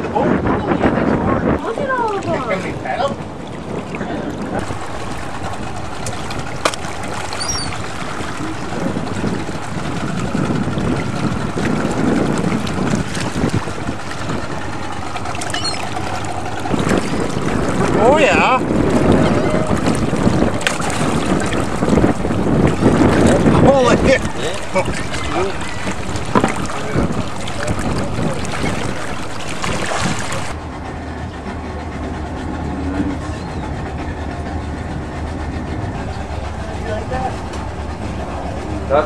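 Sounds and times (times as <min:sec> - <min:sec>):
muffled underwater sound: 0:00.0 - 0:39.0
water splashing and sloshing: 0:00.0 - 0:39.0.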